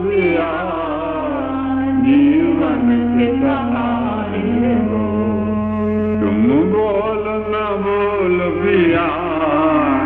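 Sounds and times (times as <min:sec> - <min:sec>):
devotional song: 0:00.0 - 0:10.0
steady drone: 0:00.0 - 0:10.0.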